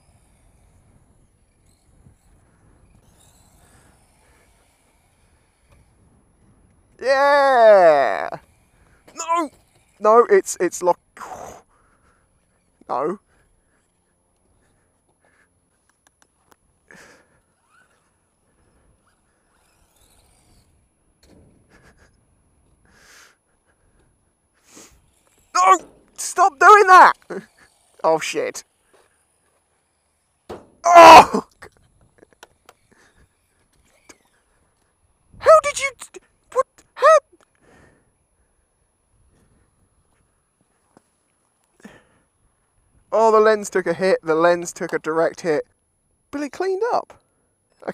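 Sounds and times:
faint ticks: 13.7s - 16.6s
faint puffs of noise: 22.8s - 25.4s.

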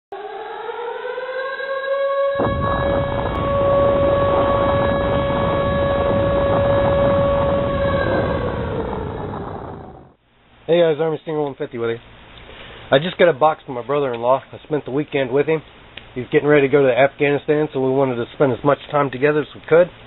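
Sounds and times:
air-raid siren wailing: 0.1s - 10.2s
loud rumbling noise: 2.4s - 10.2s.

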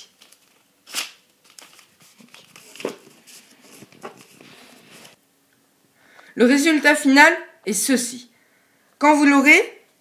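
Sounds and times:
paper rustling and folding: 0.0s - 5.2s.

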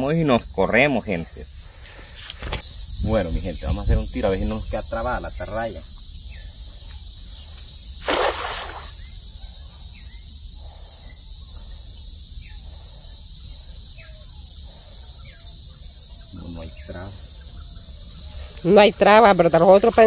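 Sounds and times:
high drone of insects: 0.0s - 20.0s
cast net splashing into water: 8.0s - 9.1s.

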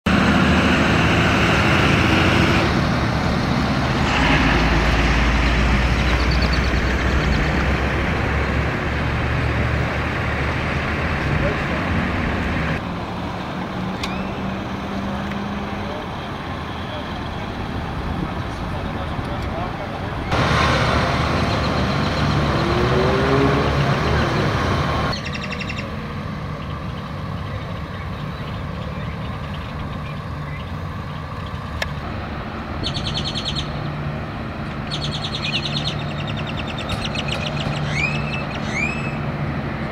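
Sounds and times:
road traffic engines: 0.0s - 39.9s.

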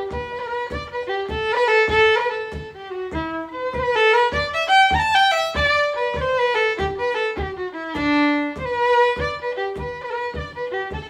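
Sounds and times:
low thump keeping time: 0.0s - 11.0s
solo fiddle melody: 0.0s - 11.0s.

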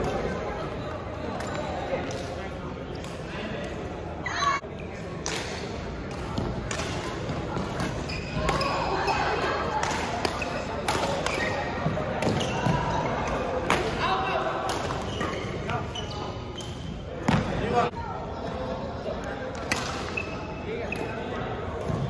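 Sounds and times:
sneakers squeaking on court floor: 6.3s - 9.6s, 10.2s - 17.8s, 19.8s - 22.0s.

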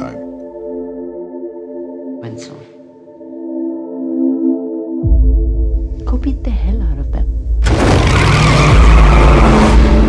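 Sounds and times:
racing car engine: 7.6s - 10.0s
tyres skidding: 7.6s - 10.0s.

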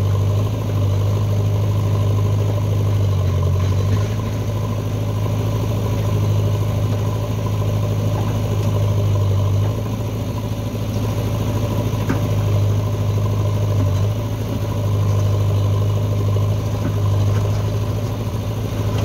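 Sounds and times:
diesel engine running: 0.0s - 19.0s
soil being dumped: 1.4s - 10.0s.

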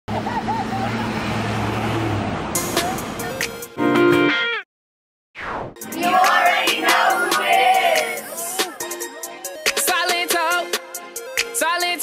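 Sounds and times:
vehicle engine humming: 0.1s - 3.4s
road noise: 0.1s - 3.8s
voices: 6.0s - 9.4s.

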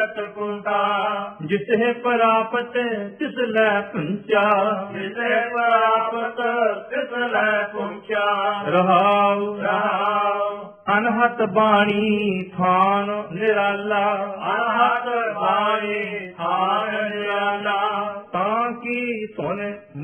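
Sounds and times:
man chanting verses: 0.0s - 20.0s.

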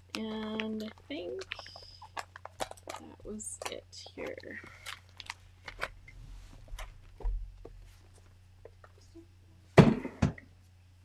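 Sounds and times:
album pages clicking and rustling: 0.1s - 6.0s.

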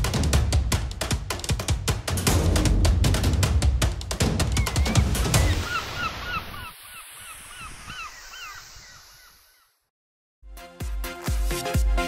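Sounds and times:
drum-led music: 0.0s - 5.6s, 10.5s - 12.0s
flock of birds calling: 4.4s - 9.8s.

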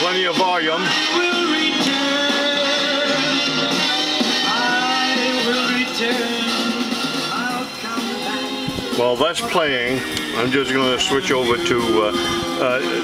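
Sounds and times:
music with singing from record player: 0.0s - 13.0s.

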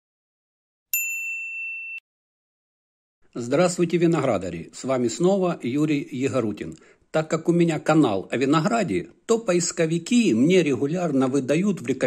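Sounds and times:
bright bell ding: 0.9s - 2.0s.

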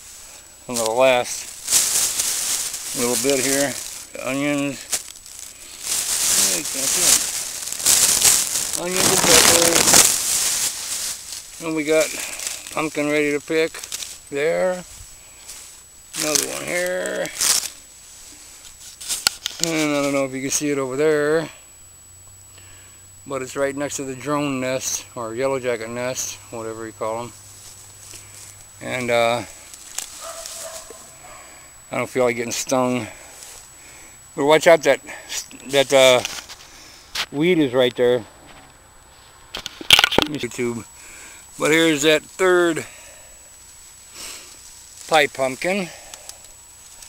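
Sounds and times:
plastic bag crinkling: 0.0s - 17.9s, 18.6s - 20.2s, 29.3s - 31.4s
crackly hiss: 0.0s - 47.0s
person's voice: 0.7s - 1.6s, 2.9s - 4.9s, 6.3s - 7.4s, 8.7s - 10.1s, 11.6s - 14.9s, 16.2s - 17.4s, 19.6s - 21.6s, 28.8s - 29.5s, 41.6s - 42.9s, 45.0s - 46.0s.

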